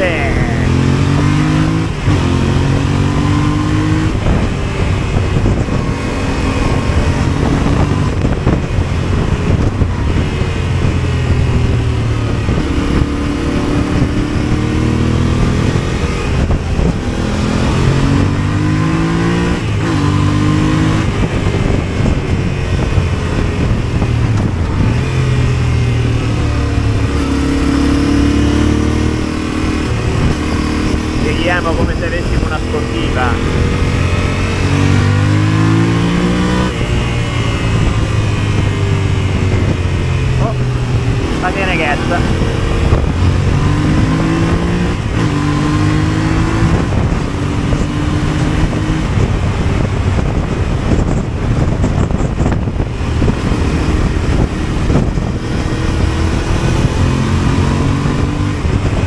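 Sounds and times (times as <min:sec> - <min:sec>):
motorcycle engine accelerating: 0:00.0 - 0:59.0
wind rushing on microphone: 0:00.0 - 0:59.0.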